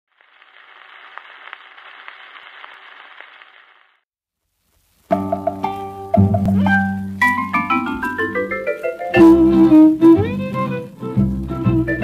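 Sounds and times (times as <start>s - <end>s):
record clicks and crackles: 0.1s - 4.0s
record surface hiss: 0.1s - 12.0s.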